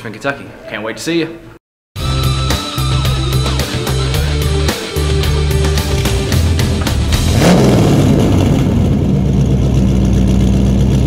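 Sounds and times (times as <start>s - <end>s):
car engine revving and rumbling: 3.3s - 11.0s.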